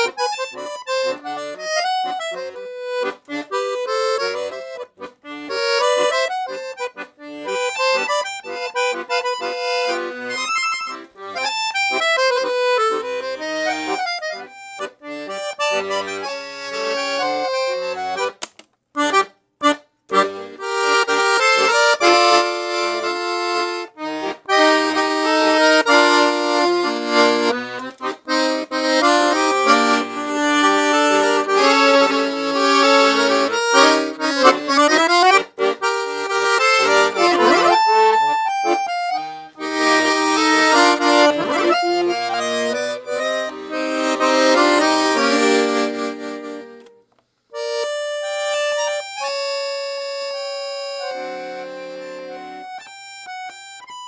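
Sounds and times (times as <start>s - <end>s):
accordion melody with bass: 0.0s - 54.0s.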